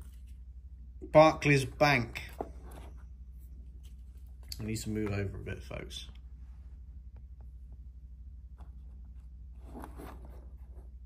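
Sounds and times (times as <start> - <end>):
steady low hum: 0.0 - 11.0
soft scrapes and rustles: 2.3 - 4.5, 8.6 - 11.0.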